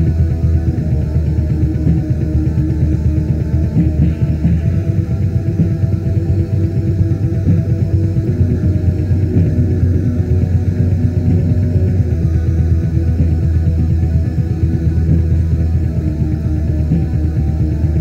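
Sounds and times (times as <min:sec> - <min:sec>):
fast dense drumming: 0:00.0 - 0:18.0
sustained droning guitar chords: 0:00.0 - 0:18.0.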